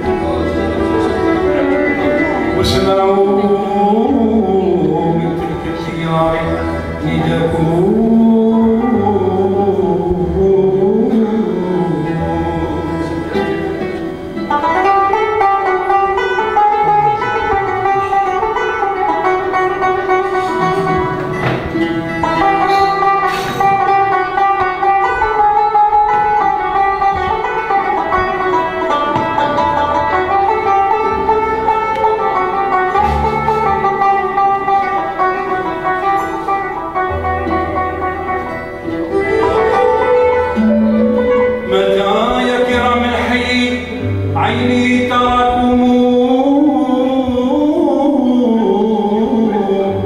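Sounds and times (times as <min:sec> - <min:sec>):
low bass notes: 0:00.0 - 0:50.0
plucked banjo melody: 0:00.0 - 0:50.0
string instruments: 0:00.0 - 0:50.0.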